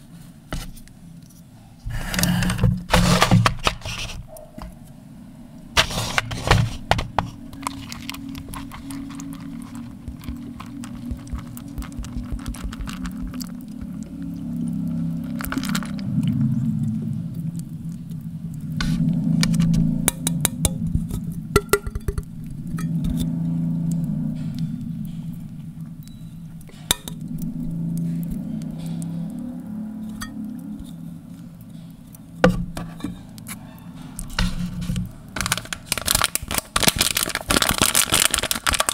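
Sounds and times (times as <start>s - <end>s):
low steady drone: 4.6s - 35.7s
milk pouring into a paper cup: 5.8s - 17.7s.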